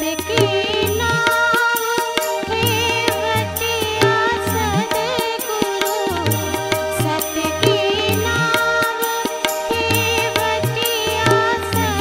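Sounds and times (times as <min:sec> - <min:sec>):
woman singing: 0:00.0 - 0:12.0.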